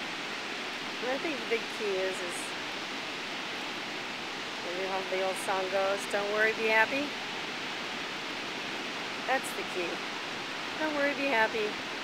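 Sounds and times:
ocean surf hissing: 0:00.0 - 0:12.0.

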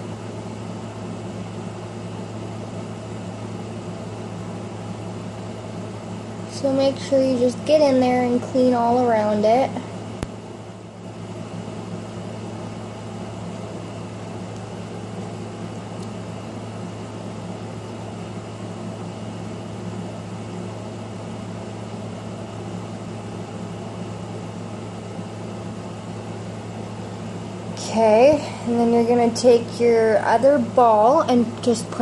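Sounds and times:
steady low hum with hiss: 0:00.0 - 0:32.0.

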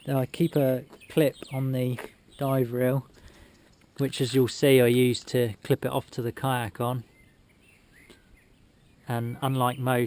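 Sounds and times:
bird chirps: 0:00.0 - 0:04.2, 0:06.9 - 0:10.0.

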